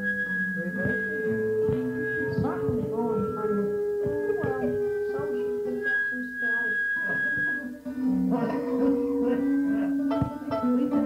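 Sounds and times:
fiddle guitar and accordion trio: 0.0 - 11.0.

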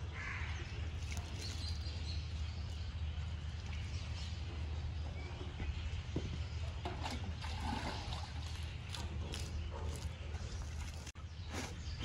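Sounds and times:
water splashing and trickling: 0.8 - 5.0, 6.7 - 11.8.

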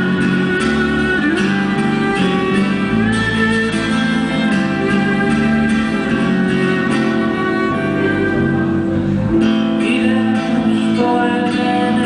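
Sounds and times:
small wind instrument: 0.0 - 9.5
guitars plucked and strummed: 0.0 - 12.0
violin melody: 0.0 - 12.0.

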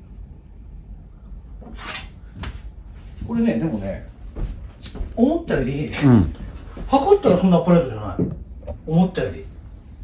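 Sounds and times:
metallic scrape: 1.7 - 2.2.

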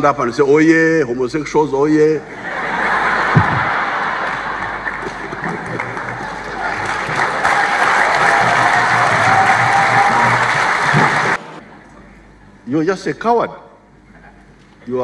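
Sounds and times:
audience applauding: 2.5 - 11.6.

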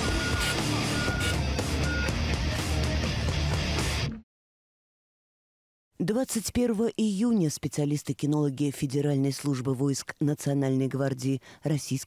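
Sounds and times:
short high electronic beep: 0.0 - 2.1
loud dense theme music: 0.0 - 4.2.

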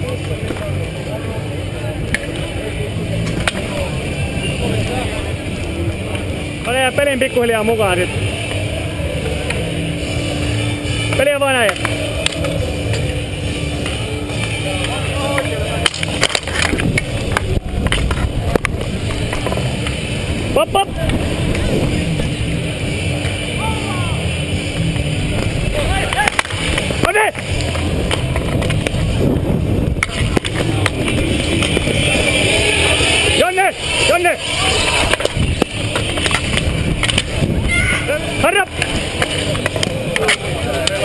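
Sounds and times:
hockey sticks and ball clacking: 0.0 - 0.9, 2.0 - 2.5, 3.1 - 3.9, 7.9 - 20.3, 21.0 - 23.5, 24.2 - 29.3, 29.9 - 41.0
people shouting: 7.3 - 21.6, 22.4 - 28.2, 30.0 - 36.4, 37.0 - 41.0
wind rumble on microphone: 16.5 - 23.0, 24.7 - 32.8, 34.9 - 39.2.

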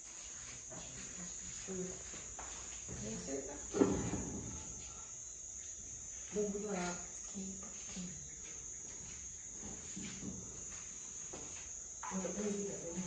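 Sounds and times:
crickets chirping: 0.0 - 13.0.

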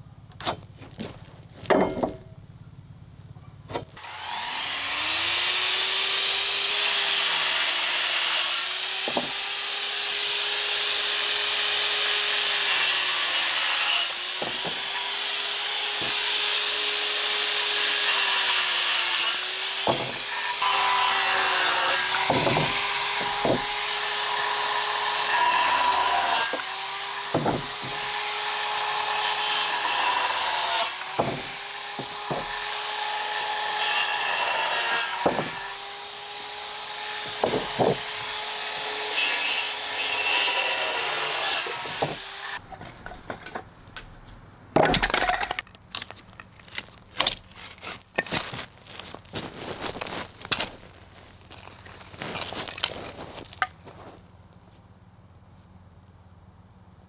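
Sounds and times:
circular saw cutting wood: 3.9 - 42.6
sharp wooden knocks: 9.0 - 9.4, 14.4 - 14.9, 19.8 - 20.3, 22.2 - 23.9, 27.3 - 28.1, 31.0 - 32.7, 35.2 - 35.6, 37.2 - 38.2, 41.7 - 44.1, 44.8 - 45.6.

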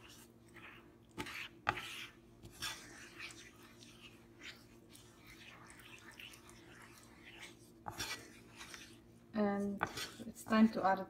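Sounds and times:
wooden spoon stirring roux in pan: 0.0 - 10.8.

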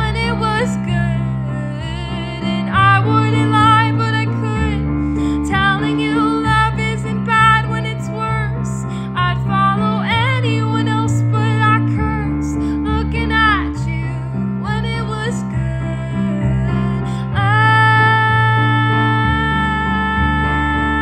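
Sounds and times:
instrumental chord accompaniment: 0.0 - 21.0
woman singing: 0.0 - 21.0.

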